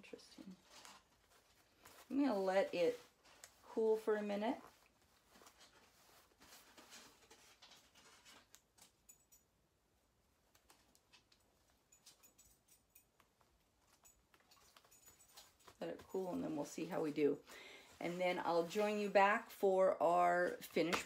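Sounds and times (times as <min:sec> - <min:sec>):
fingers handling cloth bag: 0:00.1 - 0:08.9.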